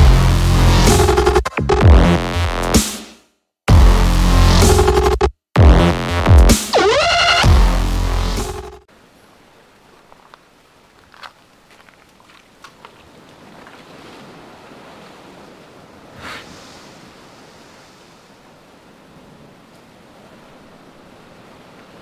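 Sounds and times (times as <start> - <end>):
wave splash: 8.9 - 22.0
surf washing over rocks: 12.9 - 22.0.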